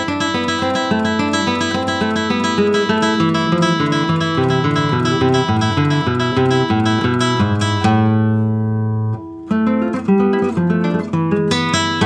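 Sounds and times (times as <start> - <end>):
classical guitar fingerstyle: 0.0 - 12.0.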